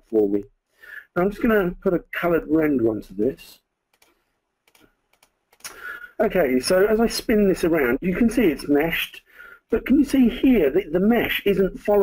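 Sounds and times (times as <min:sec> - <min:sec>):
computer mouse clicks: 0:03.9 - 0:05.8.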